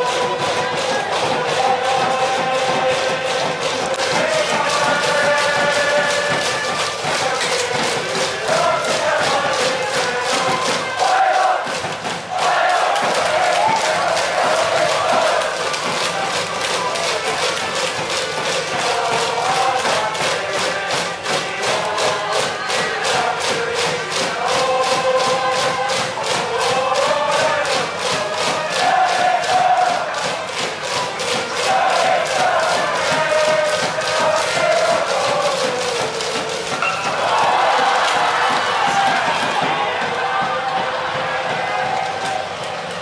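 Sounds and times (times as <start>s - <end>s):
quick steady drum beat: 0.0s - 42.7s
band playing cheering tune: 0.0s - 43.0s
crowd chanting: 0.0s - 43.0s.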